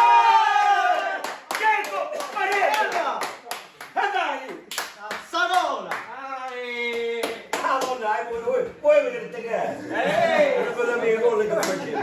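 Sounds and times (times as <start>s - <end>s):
men shouting and cheering: 0.0s - 3.3s, 5.4s - 12.0s
hand claps: 1.2s - 8.0s.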